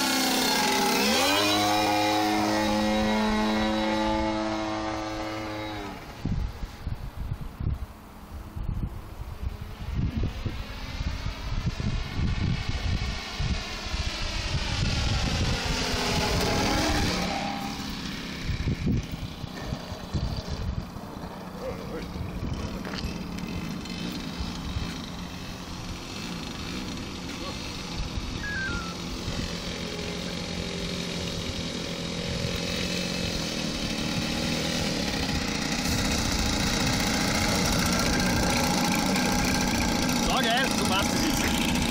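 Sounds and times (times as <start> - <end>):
model airplane engine running: 0.0 - 6.8, 8.4 - 41.9
wind buffeting microphone: 5.1 - 40.2.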